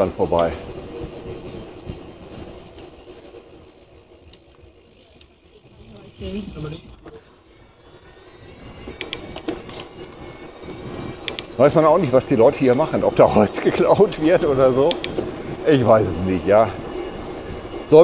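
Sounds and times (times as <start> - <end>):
wind and tyre rumble: 0.0 - 18.0
sharp clicks: 9.0 - 9.5, 11.2 - 11.5, 14.9 - 15.2.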